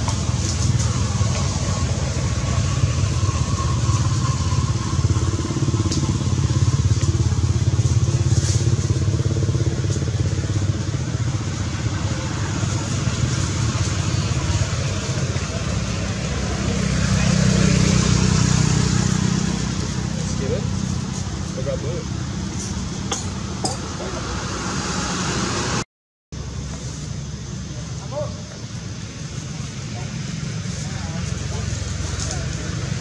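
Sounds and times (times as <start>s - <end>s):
low engine drone: 0.0s - 25.8s.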